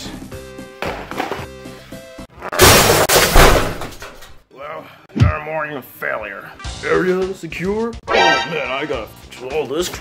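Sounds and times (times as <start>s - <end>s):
background music with held notes: 6.0s - 10.0s.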